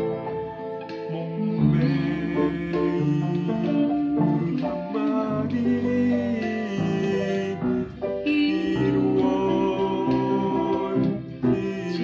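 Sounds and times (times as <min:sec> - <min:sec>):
upright piano melody: 0:00.0 - 0:12.0.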